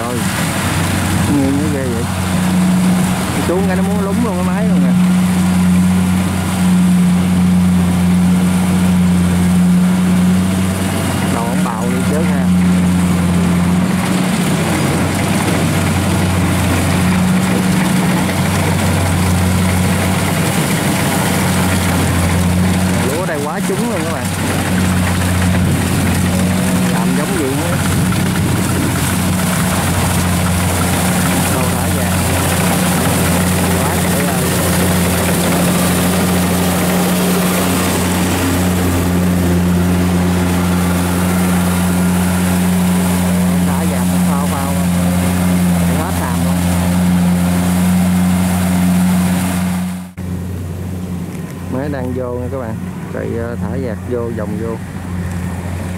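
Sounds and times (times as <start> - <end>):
diesel engine drone: 0.0 - 55.9.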